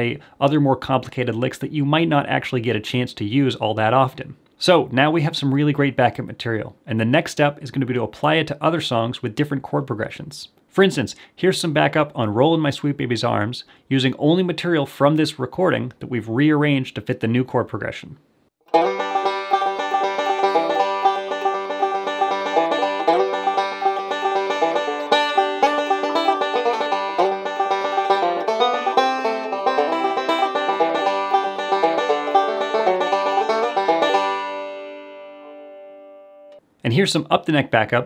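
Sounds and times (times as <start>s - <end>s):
banjo playing bluegrass: 18.6s - 36.0s.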